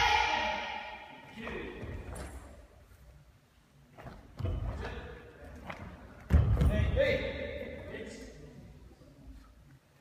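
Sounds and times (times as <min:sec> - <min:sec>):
students shouting: 0:00.0 - 0:01.1.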